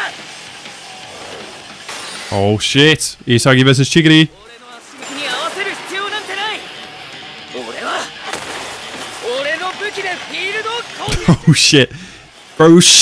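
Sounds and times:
background music: 0.0 - 13.0
man shouting dialogue: 2.3 - 6.7, 7.5 - 8.2, 9.2 - 11.9.

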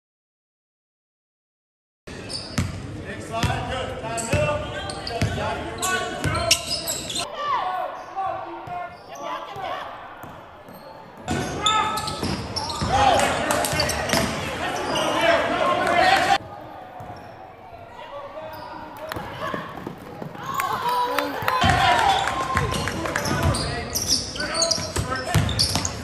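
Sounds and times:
sneakers squeaking: 2.1 - 3.5, 4.1 - 15.5, 16.4 - 26.0
voices echoing in gym: 2.1 - 26.0
basketball bouncing on court: 9.5 - 14.4, 24.7 - 26.0.

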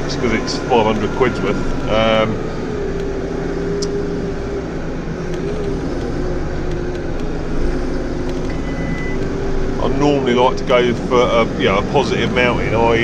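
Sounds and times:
road noise: 0.0 - 13.0
tractor diesel engine running: 0.0 - 13.0.

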